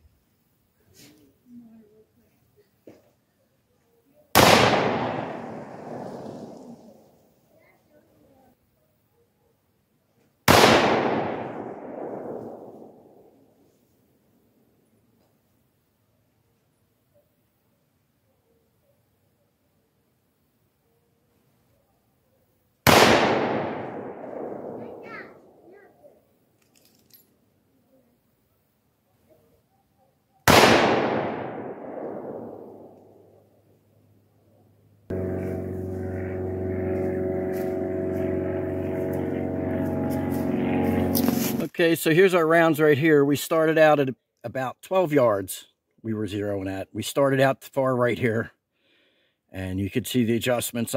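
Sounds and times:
rifle shots echoing: 0:04.4 - 0:06.6, 0:10.5 - 0:13.4, 0:22.8 - 0:25.6, 0:30.5 - 0:33.4
low drone with held tones: 0:35.1 - 0:41.8.

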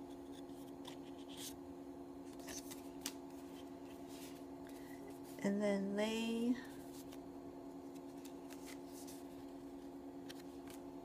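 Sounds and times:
paper cards rustling: 0:00.2 - 0:01.6, 0:02.2 - 0:05.4, 0:06.6 - 0:07.2, 0:07.8 - 0:10.9.

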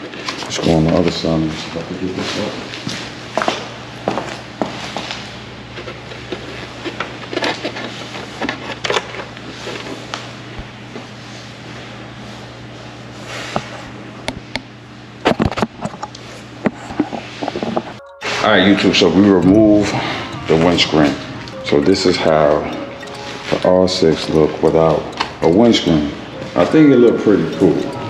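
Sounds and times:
plastic scraping and rustling: 0:05.9 - 0:10.0
low hum: 0:17.8 - 0:28.0.

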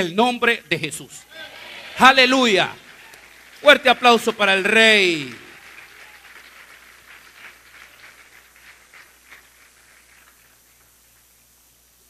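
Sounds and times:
low hiss: 0:00.0 - 0:12.0
faint applause: 0:01.3 - 0:11.1.

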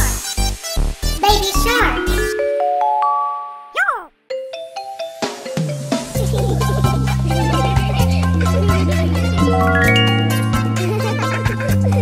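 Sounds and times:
chime notes: 0:09.5 - 0:10.9.

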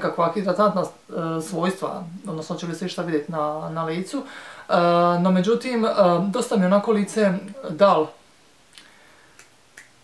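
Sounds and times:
woman speaking: 0:00.0 - 0:08.2.

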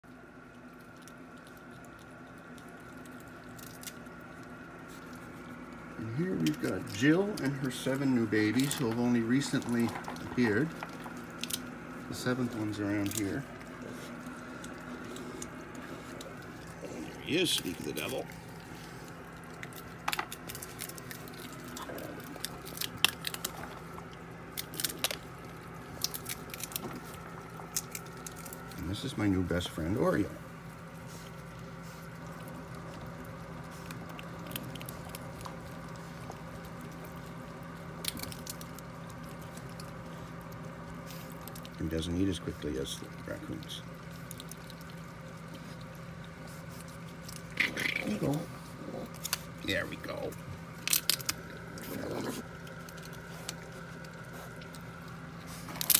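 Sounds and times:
faint chewing: 0:00.0 - 0:55.9
low steady hum: 0:00.0 - 0:55.9
skunk crunching peanut shell: 0:00.0 - 0:55.9.

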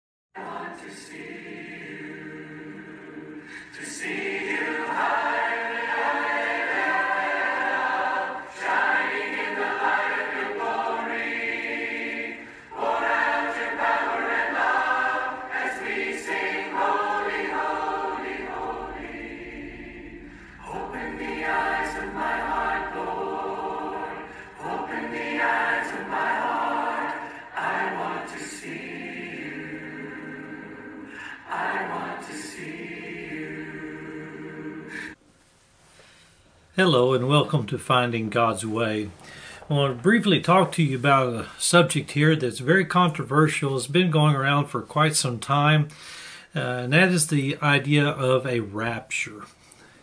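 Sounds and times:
choir singing a slow hymn: 0:00.4 - 0:35.2.

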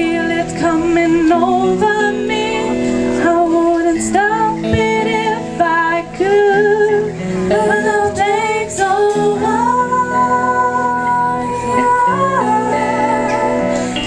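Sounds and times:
acoustic guitar: 0:00.0 - 0:14.0
woman singing: 0:00.0 - 0:14.0.

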